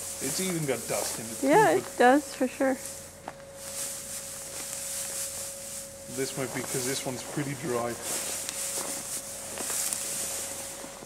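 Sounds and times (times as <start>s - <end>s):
dry hay rustling: 0.0s - 11.0s.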